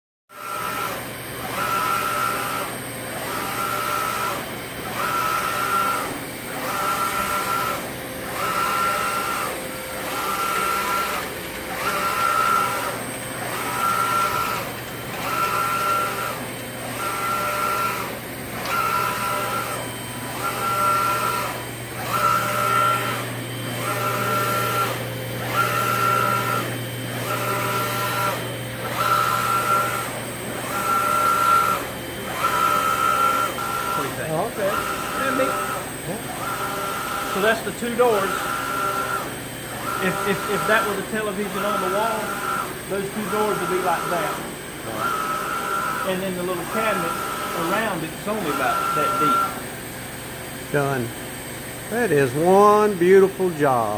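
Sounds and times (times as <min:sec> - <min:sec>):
printer carriage motor whirring: 0:00.3 - 0:53.9.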